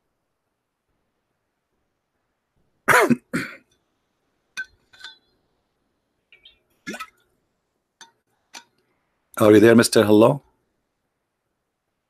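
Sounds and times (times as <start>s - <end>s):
man coughing: 2.9s - 3.7s.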